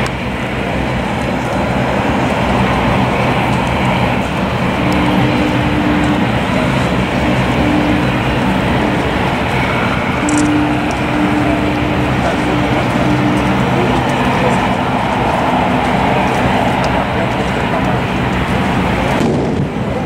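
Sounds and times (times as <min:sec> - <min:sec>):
engine running: 0:00.0 - 0:20.0
loud rushing noise: 0:00.0 - 0:20.0
faint high tone: 0:04.6 - 0:16.2.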